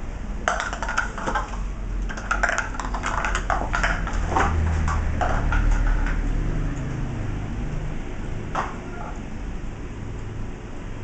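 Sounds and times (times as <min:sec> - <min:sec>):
plastic cup clattering on tiles: 0:00.5 - 0:06.2.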